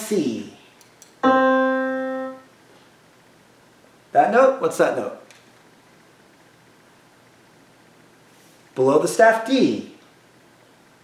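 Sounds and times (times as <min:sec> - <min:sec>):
single piano note: 0:01.2 - 0:02.4.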